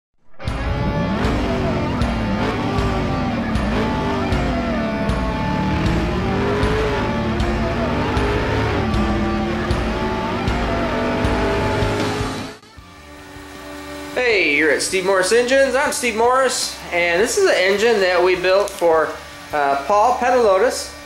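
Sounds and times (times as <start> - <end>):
car engine revving: 0.3 - 21.0
intro music with a beat: 0.4 - 13.1.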